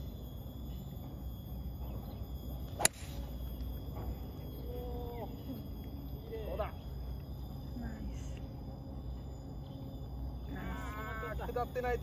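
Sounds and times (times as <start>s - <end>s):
insects humming: 0.0s - 12.0s
golf club striking ball: 2.8s - 3.3s.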